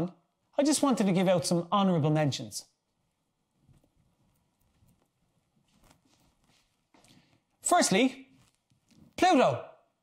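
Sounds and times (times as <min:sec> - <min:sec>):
faint footsteps on hard floor: 0:04.6 - 0:07.5.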